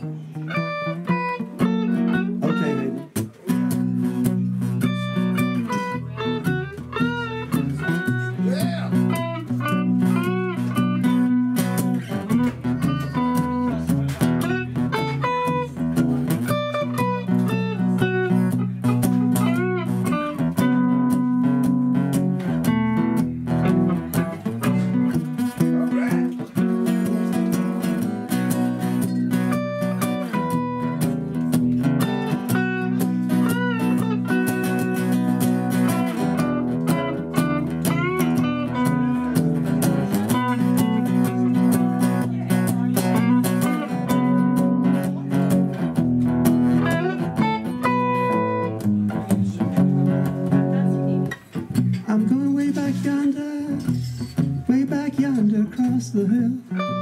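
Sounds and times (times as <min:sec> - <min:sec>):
guitar chord accompaniment: 0:00.0 - 0:54.9, 0:56.7 - 0:57.0
electric guitar blues solo: 0:00.0 - 0:57.0.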